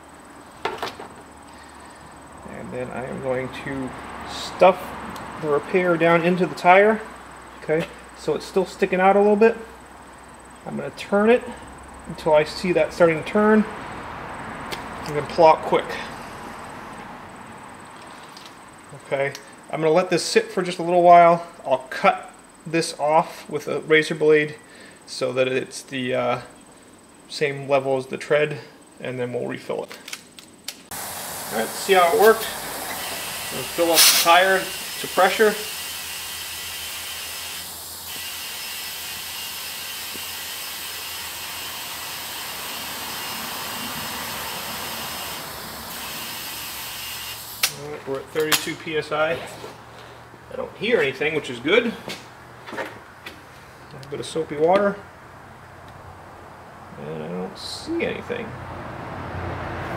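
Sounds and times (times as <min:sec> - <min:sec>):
compressed air hissing into tire: 0:30.9 - 0:47.9.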